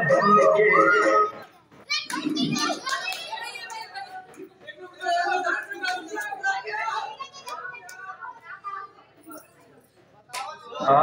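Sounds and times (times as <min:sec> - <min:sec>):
girls shouting and laughing: 0:00.6 - 0:04.3.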